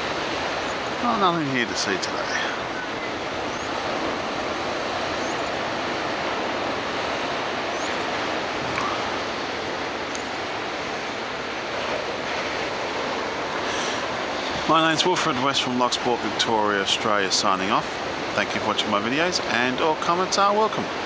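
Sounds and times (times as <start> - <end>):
ocean surf breaking on beach: 0.0 - 21.0
wind: 0.0 - 21.0.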